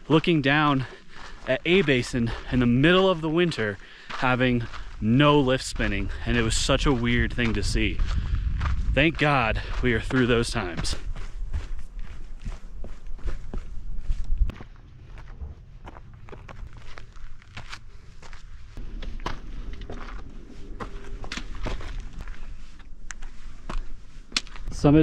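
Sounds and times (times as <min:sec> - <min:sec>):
footsteps crunching on loose rock: 0:00.2 - 0:25.0
wind rumbling on microphone: 0:04.5 - 0:25.0.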